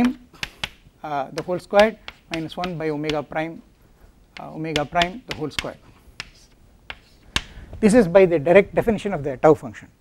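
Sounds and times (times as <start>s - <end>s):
chalk tapping on blackboard: 0.0s - 3.7s, 4.3s - 7.6s.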